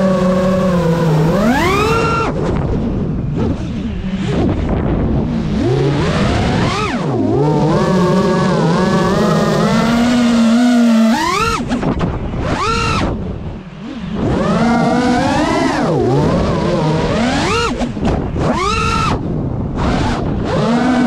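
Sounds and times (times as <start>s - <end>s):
drone motors whining: 0.0s - 21.0s.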